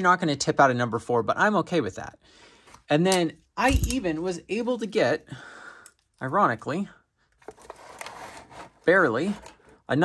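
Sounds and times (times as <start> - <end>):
metal scraping and clicking on cardboard: 7.4 - 9.7.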